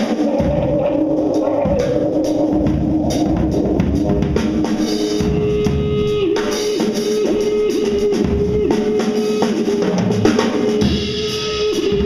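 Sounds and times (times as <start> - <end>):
drum kit beating: 0.0 - 12.0
electric guitar note bending: 0.0 - 12.0.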